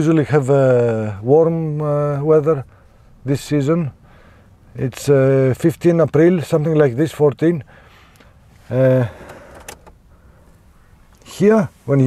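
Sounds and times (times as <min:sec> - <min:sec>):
low steady background: 0:00.0 - 0:12.0.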